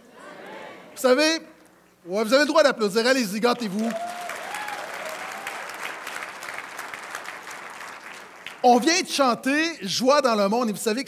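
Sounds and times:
congregation applauding: 3.4s - 9.0s.

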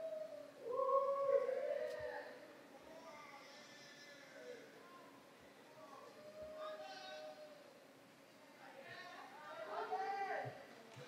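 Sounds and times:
people whooping: 0.0s - 2.4s.

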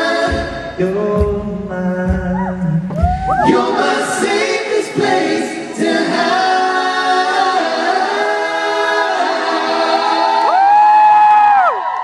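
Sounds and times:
male vocal group singing: 0.0s - 10.6s.

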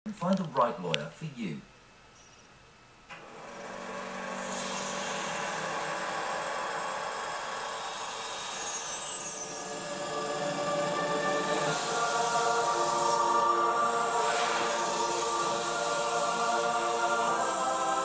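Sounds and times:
rushing hiss: 3.4s - 18.0s
sustained held tones: 4.2s - 18.0s.

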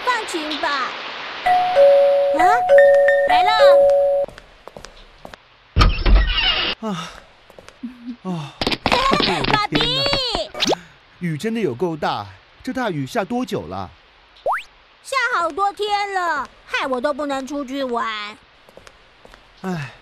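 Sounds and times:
two-tone doorbell chime: 1.5s - 4.3s.

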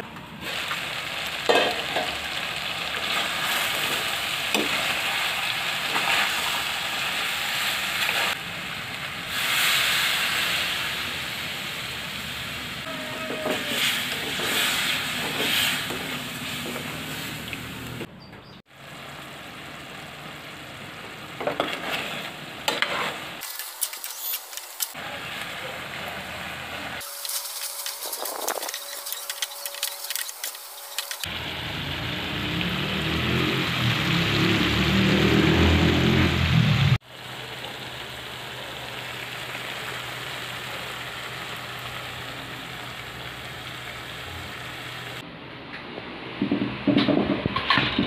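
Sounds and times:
chicken sizzling in a pot: 0.4s - 17.7s, 18.7s - 45.2s.

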